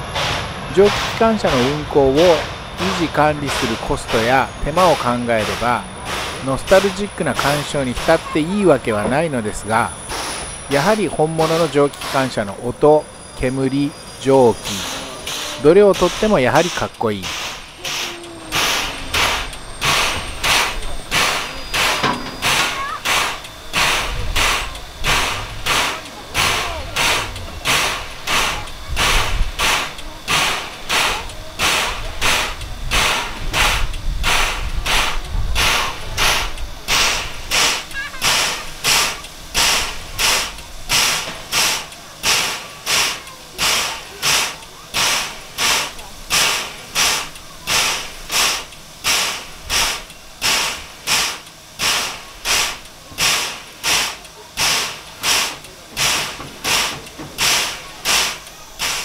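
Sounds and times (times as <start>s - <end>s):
low rumble: 0.0s - 37.8s
steam air pump hissing strokes: 0.0s - 59.0s.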